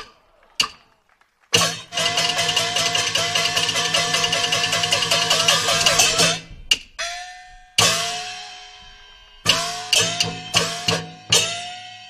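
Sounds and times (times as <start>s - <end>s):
sharp clap: 0.0s - 4.7s
fast run of cymbal strikes: 1.6s - 6.5s, 7.1s - 12.0s
gong strokes ringing out: 7.0s - 12.0s.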